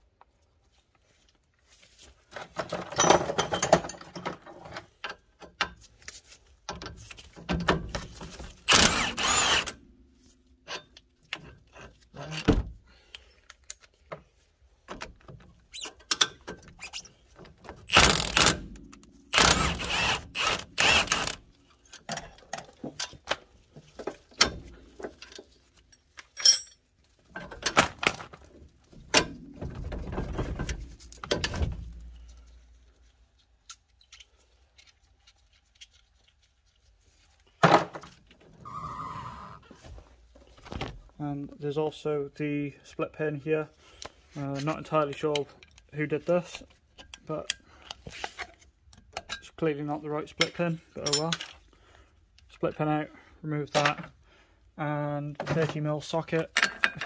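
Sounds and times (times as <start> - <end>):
tool clatter and clicks: 2.3 - 9.8, 14.9 - 28.4, 33.4 - 36.4, 44.5 - 49.6, 50.3 - 51.6, 55.4 - 57.0
socket tool undoing bolts: 17.8 - 23.2.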